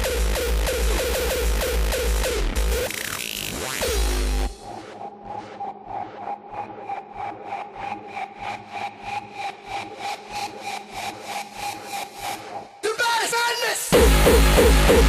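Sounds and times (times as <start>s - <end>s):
hardcore electronic track: 0.0s - 15.0s.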